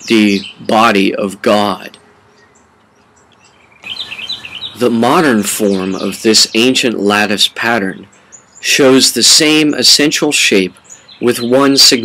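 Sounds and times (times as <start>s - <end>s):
birds chirping: 0.0s - 12.0s
short high bird chirps: 2.3s - 4.8s.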